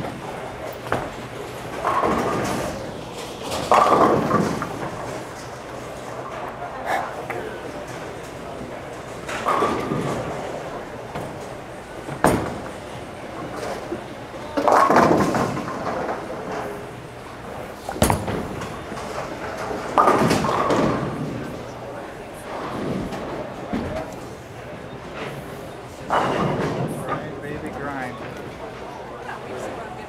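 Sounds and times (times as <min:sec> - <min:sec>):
bowling pins knocking: 0:00.0 - 0:06.0, 0:08.8 - 0:16.9, 0:17.5 - 0:21.6
bowling clattering: 0:00.1 - 0:24.3, 0:26.0 - 0:29.0.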